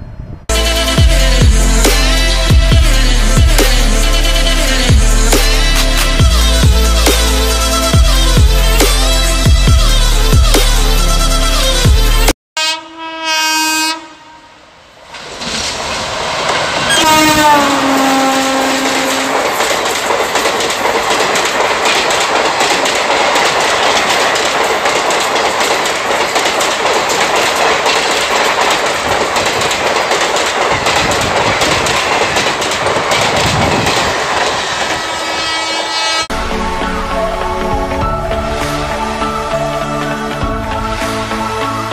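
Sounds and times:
train horn: 0:00.5 - 0:07.0, 0:12.6 - 0:14.7, 0:16.9 - 0:19.6, 0:33.6 - 0:37.6
train coaches rushing past: 0:14.6 - 0:41.9.

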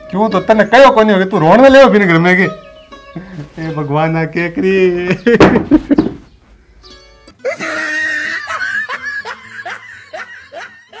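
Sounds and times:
men giggling: 0:05.1 - 0:06.2, 0:07.4 - 0:11.0.

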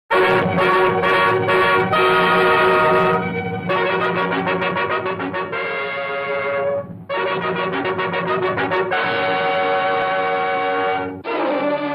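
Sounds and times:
brass fanfare: 0:00.1 - 0:11.9.

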